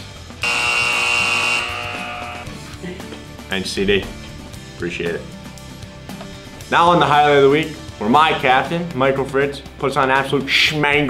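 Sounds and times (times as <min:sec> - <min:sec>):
background music: 0:00.0 - 0:11.0
high held tone: 0:00.4 - 0:02.5.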